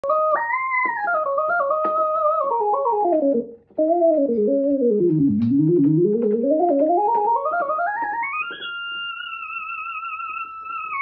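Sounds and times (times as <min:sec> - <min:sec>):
synthesizer lead melody: 0:00.1 - 0:11.0.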